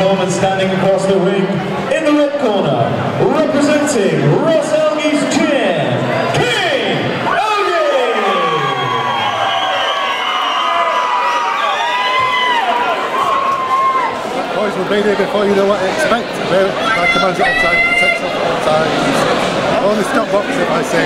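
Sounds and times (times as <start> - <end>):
crowd cheering and shouting: 2.8 - 21.0.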